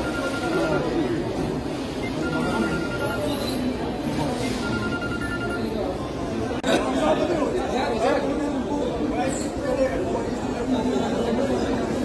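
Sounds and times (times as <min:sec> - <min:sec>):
overlapping chatter in a hall: 0:00.0 - 0:12.0.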